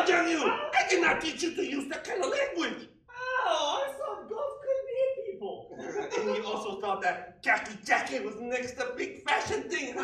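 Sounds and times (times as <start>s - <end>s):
person speaking: 0.0s - 10.0s.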